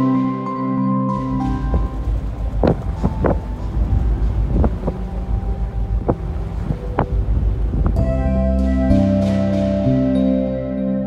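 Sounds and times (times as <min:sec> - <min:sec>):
water noise: 0:00.0 - 0:10.9
wind buffeting microphone: 0:01.1 - 0:09.3
low engine rumble: 0:01.1 - 0:10.9.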